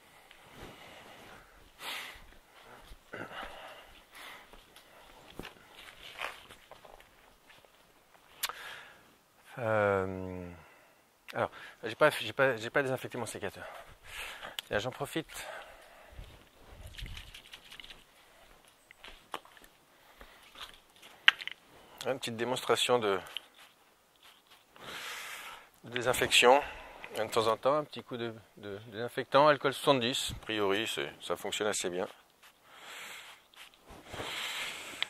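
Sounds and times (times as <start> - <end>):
light rustling of objects: 0.1 - 9.2, 12.0 - 24.9, 29.7 - 35.0.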